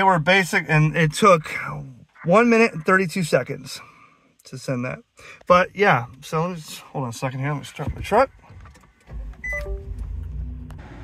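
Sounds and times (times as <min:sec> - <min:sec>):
truck engine starting and idling: 0:08.9 - 0:11.0.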